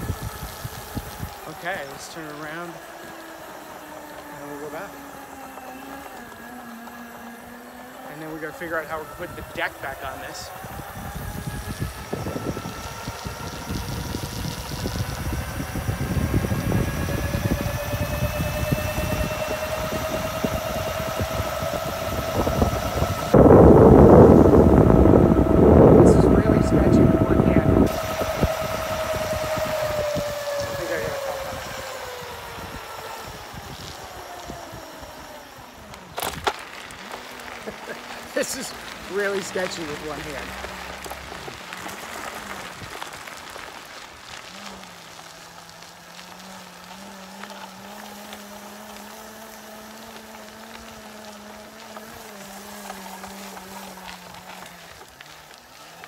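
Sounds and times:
wind rumble on microphone: 0.0 - 3.1, 8.4 - 48.6
electric scooter motor whining: 0.0 - 56.0.

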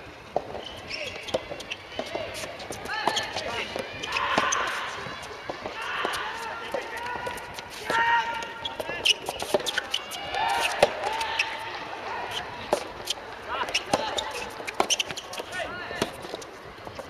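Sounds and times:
tennis ball struck by rackets: 0.3 - 11.2, 12.6 - 16.4
ball bouncing on hard court: 0.4 - 11.4, 12.6 - 16.4
players calling out: 0.4 - 17.0.

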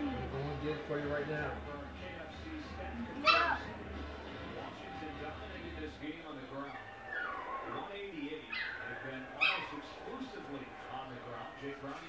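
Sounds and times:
dog whining and yipping: 3.2 - 3.6, 6.7 - 7.8, 8.5 - 9.8.

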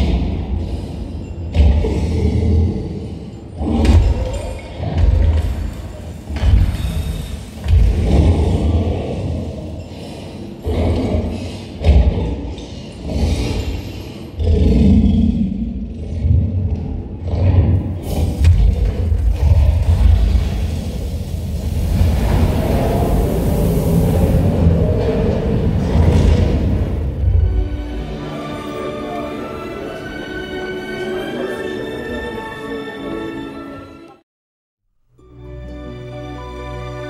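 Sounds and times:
heavy booms and rumbles: 17.6 - 27.8
fire effect rushing: 18.0 - 27.6
dramatic music over loudspeakers: 25.2 - 34.2.

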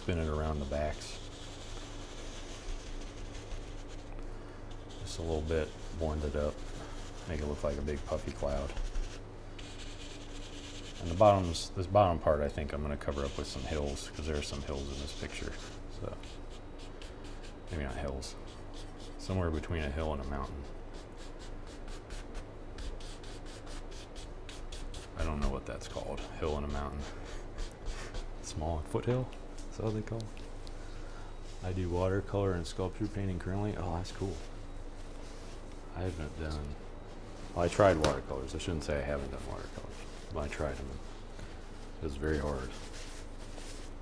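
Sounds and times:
paint brush scrubbing on canvas: 0.0 - 4.1, 4.7 - 22.1, 22.9 - 28.5, 37.4 - 44.0.

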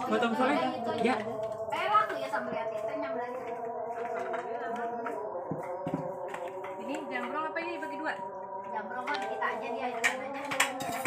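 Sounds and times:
background chatter: 0.0 - 11.0
dishes and utensils clinking: 10.0 - 11.0.

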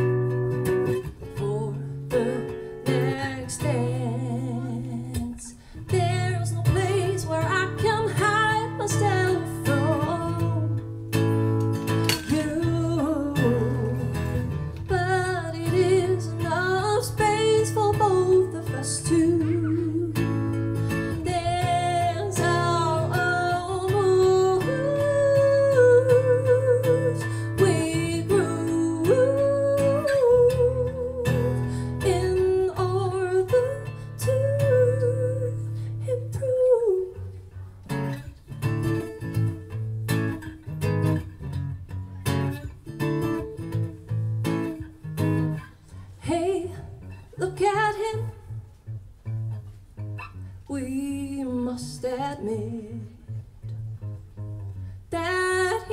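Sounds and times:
woman singing: 0.0 - 38.1, 45.9 - 48.7, 50.6 - 53.4, 55.1 - 55.9
strummed acoustic guitar: 0.0 - 50.7.

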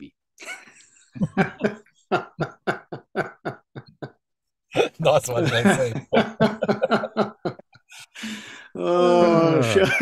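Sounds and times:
man laughing heartily: 0.4 - 8.2.

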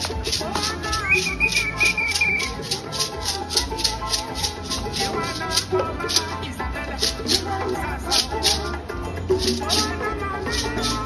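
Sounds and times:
hand drum ensemble: 0.0 - 11.0
shaker rattle: 0.0 - 11.0.

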